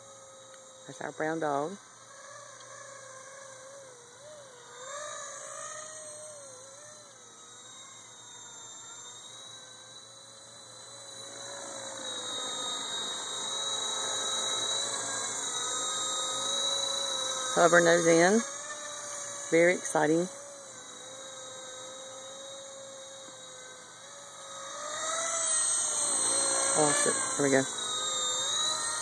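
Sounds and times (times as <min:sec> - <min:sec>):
toy helicopter motor whine: 0:00.0 - 0:29.0.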